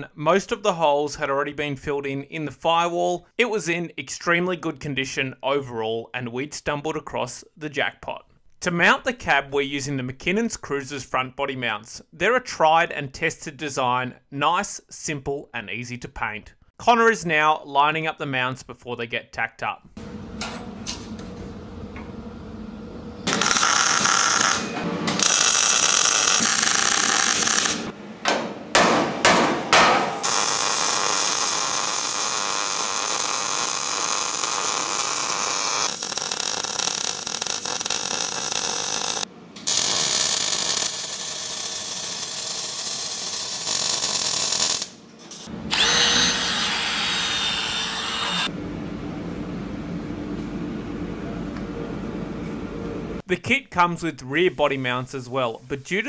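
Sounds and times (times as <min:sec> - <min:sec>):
mig welding: 0:23.2 - 0:28.0, 0:28.8 - 0:48.5.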